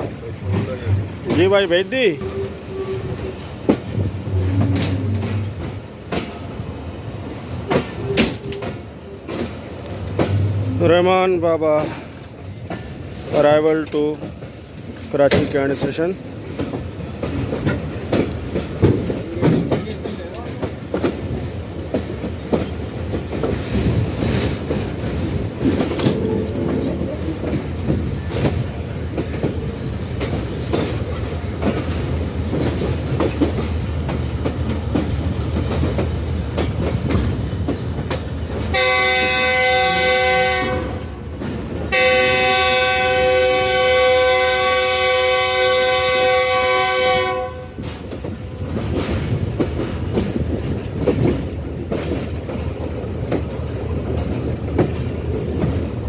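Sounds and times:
train wheels clickety-clack: 0:00.0 - 0:56.0
locomotive air horn blasts: 0:38.7 - 0:41.1, 0:41.9 - 0:47.8.

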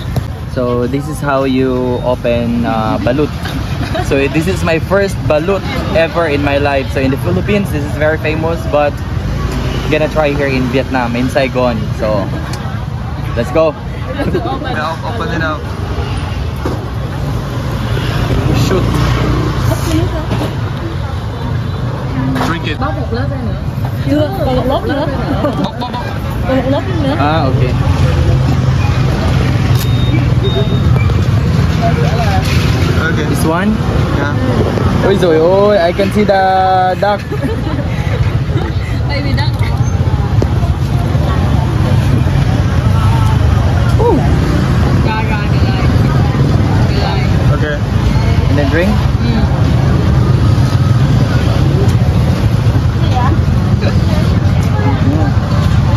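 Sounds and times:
low rumble of street traffic: 0:00.0 - 0:55.9
voices chattering: 0:00.0 - 0:55.9
vehicle passing: 0:02.5 - 0:55.9.

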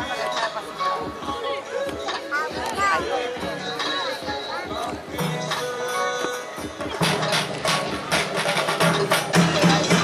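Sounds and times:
background music: 0:00.0 - 0:10.0
percussive beat: 0:00.0 - 0:10.0.

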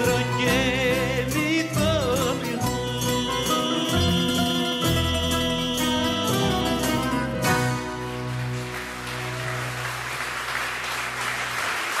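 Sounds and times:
audience applause: 0:07.8 - 0:12.0.

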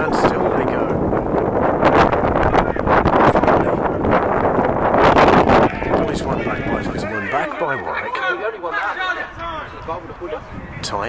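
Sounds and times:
man talking: 0:00.0 - 0:01.0, 0:05.6 - 0:11.0.

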